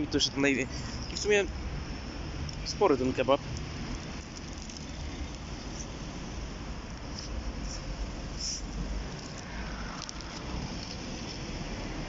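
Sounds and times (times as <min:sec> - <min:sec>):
low street rumble: 0:00.0 - 0:12.0.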